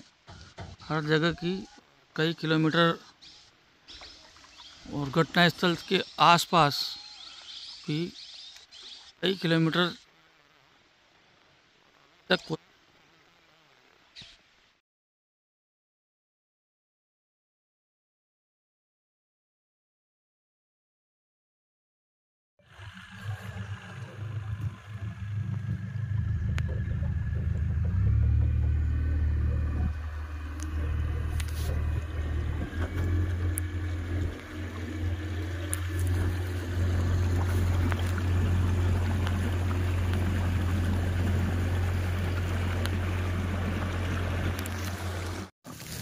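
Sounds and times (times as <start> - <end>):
wind: 0.0 - 14.8, 22.6 - 46.0
motorboat engine running: 22.6 - 45.5
water rushing: 22.6 - 46.0.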